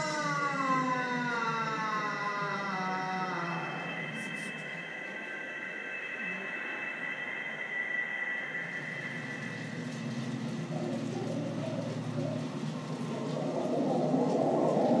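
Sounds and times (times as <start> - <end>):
high ringing tone: 0.0 - 11.0
low droning tones: 0.0 - 15.0.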